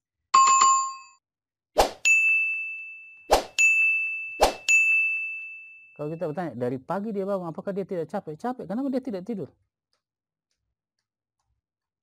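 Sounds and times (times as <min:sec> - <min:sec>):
bell-like ding: 0:02.0 - 0:06.4
ringing chime: 0:02.1 - 0:06.5.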